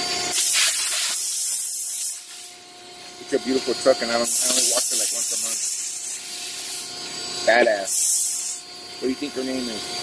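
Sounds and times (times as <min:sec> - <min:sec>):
high-pressure water spray hissing: 0:00.3 - 0:02.5, 0:04.2 - 0:06.9, 0:07.7 - 0:08.6.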